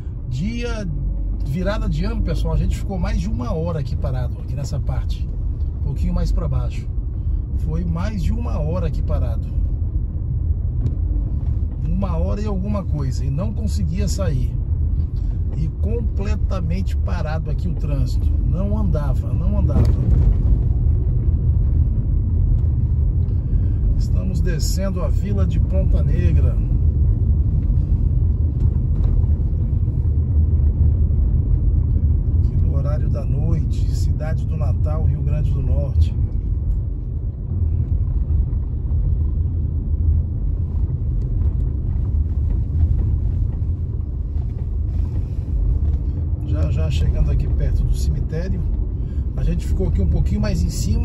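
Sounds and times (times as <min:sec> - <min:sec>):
car road and engine rumble: 0:00.0 - 0:51.0.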